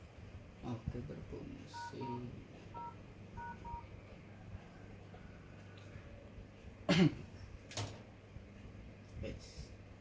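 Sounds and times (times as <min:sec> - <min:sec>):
phone keypad dual-tone beeps: 0:01.8 - 0:02.2, 0:02.8 - 0:03.9.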